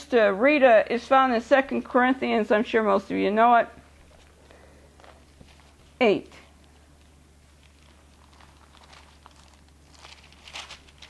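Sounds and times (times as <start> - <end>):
low electrical hum: 0.0 - 11.0
paper pages being turned: 6.6 - 11.0.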